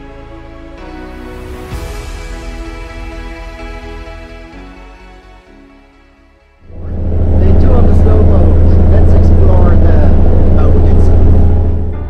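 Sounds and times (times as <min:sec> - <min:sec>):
boat engine droning: 0:06.6 - 0:12.0.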